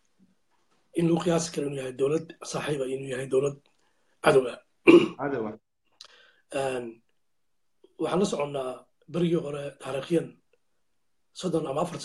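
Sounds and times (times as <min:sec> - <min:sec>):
man clearing his throat: 0:04.9 - 0:05.5.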